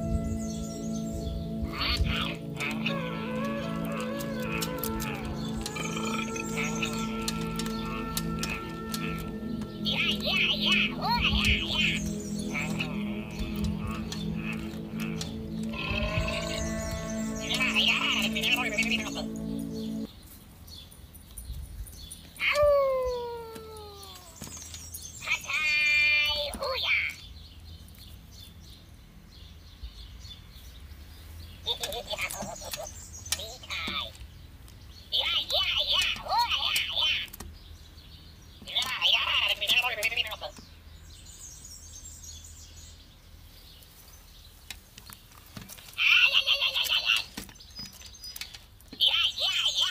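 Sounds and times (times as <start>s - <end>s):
toy high-pitched warbling trill: 0.0s - 20.1s.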